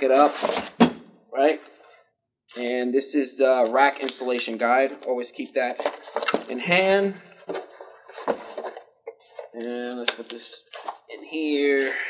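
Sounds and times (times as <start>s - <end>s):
soft cardboard rustling: 5.2s - 9.7s
cardboard knocks and scrapes: 7.4s - 9.5s.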